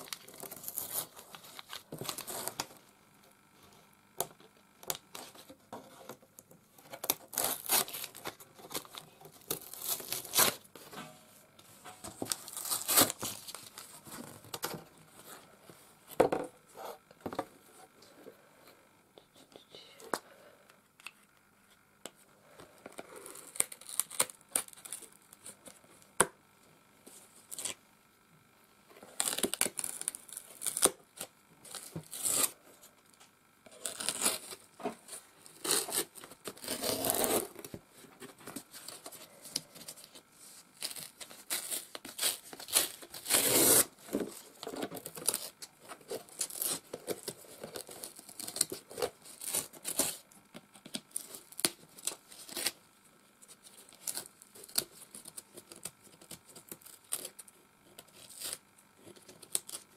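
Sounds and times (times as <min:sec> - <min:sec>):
paper tearing off cardboard: 0:07.0 - 0:10.6, 0:12.2 - 0:14.2, 0:31.7 - 0:32.6, 0:33.7 - 0:34.6, 0:35.4 - 0:37.7, 0:40.8 - 0:43.9, 0:45.0 - 0:50.2.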